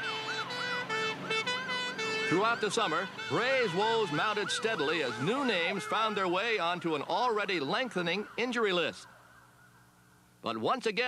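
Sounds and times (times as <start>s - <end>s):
ambulance siren wailing: 0.0s - 10.0s.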